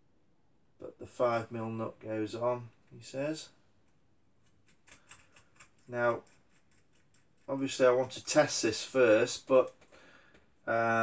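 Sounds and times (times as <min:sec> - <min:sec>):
small metal parts clicking: 0:04.4 - 0:07.5.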